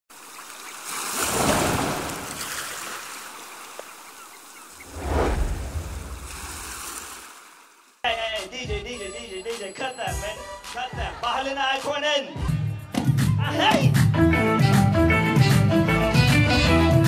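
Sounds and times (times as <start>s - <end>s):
ocean surf rushing: 4.8s - 7.8s.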